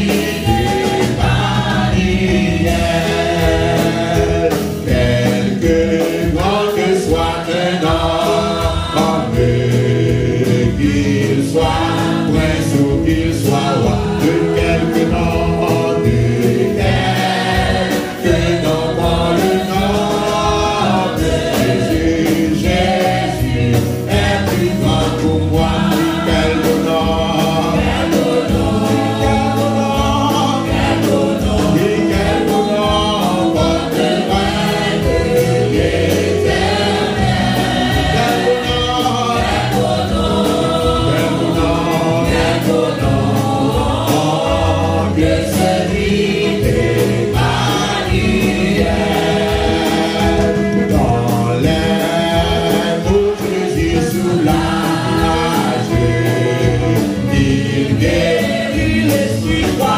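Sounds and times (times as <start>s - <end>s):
drum kit and band: 0.0s - 59.9s
man and women singing: 0.0s - 59.9s.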